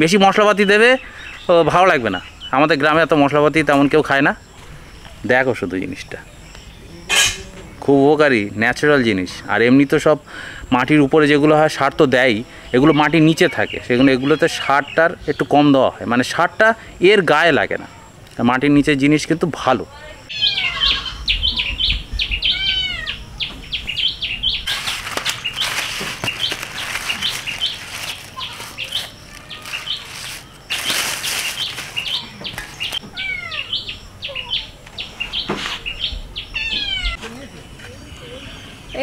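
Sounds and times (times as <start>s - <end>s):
birds chirping: 0.0s - 39.0s
plastic bag rustling: 24.6s - 33.0s.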